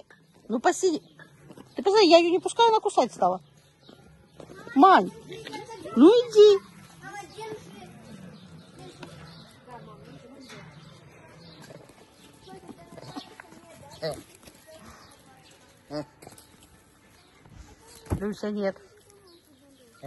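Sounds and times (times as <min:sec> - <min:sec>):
faint indistinct voices: 0:00.0 - 0:20.0.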